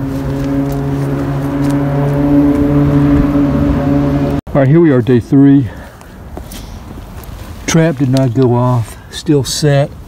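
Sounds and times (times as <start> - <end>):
engine humming steadily: 0.0 - 9.2.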